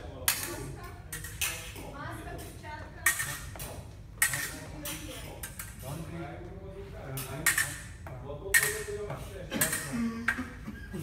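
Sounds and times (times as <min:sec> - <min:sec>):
fencing blades clashing: 0:00.2 - 0:06.1, 0:07.1 - 0:10.6.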